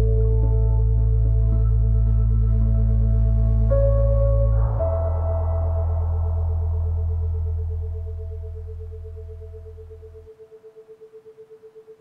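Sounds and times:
low drone: 0.0s - 11.7s
pulsing pure tone: 0.0s - 12.0s.

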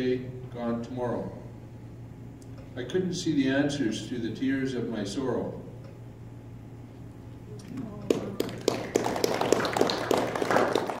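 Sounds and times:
audience applauding: 8.1s - 11.0s.

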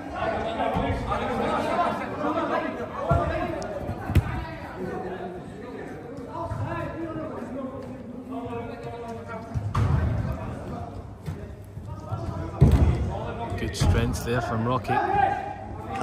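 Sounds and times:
players shouting in echoing hall: 0.0s - 16.0s
football being kicked: 3.1s - 4.6s.

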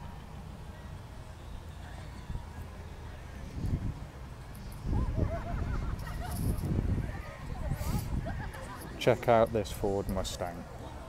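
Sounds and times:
people chattering: 0.0s - 11.0s
wind rumbling on microphone: 2.0s - 9.0s.

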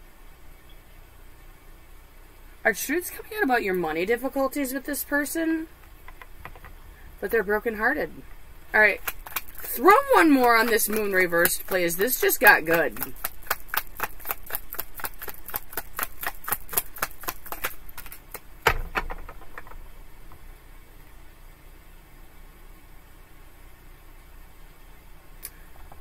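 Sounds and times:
cards being shuffled: 8.9s - 19.8s
single thump: 18.6s - 19.8s.

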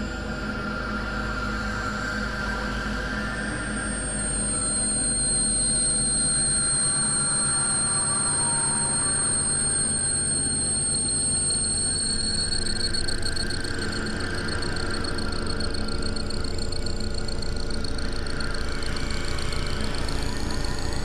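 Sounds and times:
high piercing steady tones: 1.0s - 21.0s.

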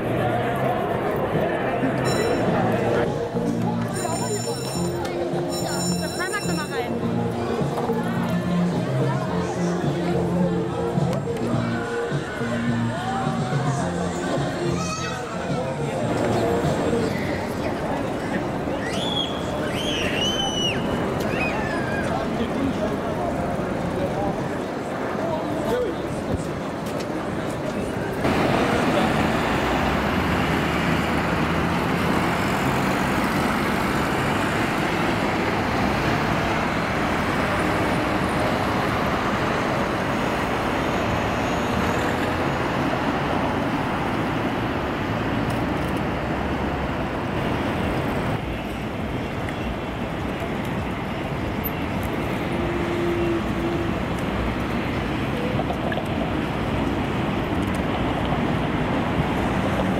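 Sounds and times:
murmur of people: 0.0s - 46.0s
traffic passing on busy road: 0.0s - 59.9s.

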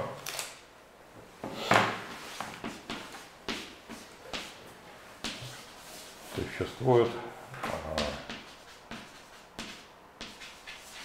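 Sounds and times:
chalk tapping and scraping on blackboard: 2.1s - 4.6s, 5.2s - 6.0s, 7.9s - 11.0s.

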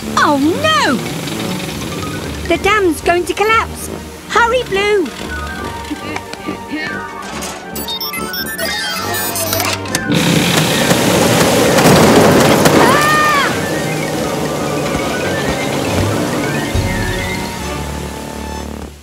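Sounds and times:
rushing gushing water: 0.0s - 7.2s, 10.0s - 19.0s
cartoon background music: 0.0s - 11.3s, 12.8s - 19.0s.

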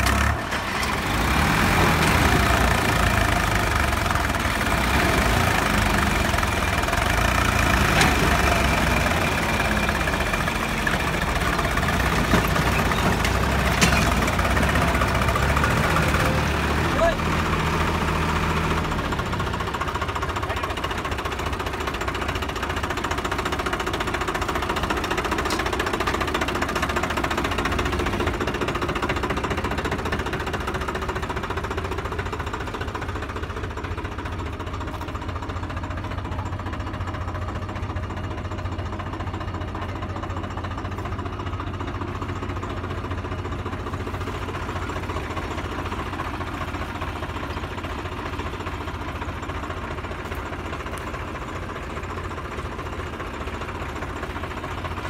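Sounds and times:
diesel tractor engine running: 0.0s - 55.0s.

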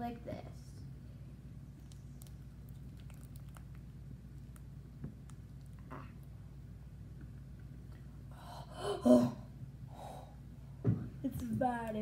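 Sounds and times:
faint low hum: 0.0s - 12.0s
girl gasping: 8.3s - 10.3s.

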